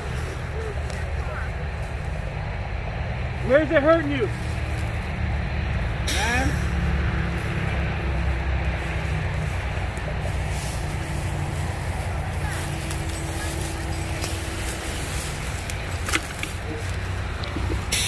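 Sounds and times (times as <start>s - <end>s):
faint voices: 0.0s - 2.7s, 7.6s - 18.0s
idling vehicle engines rumbling: 0.0s - 18.0s.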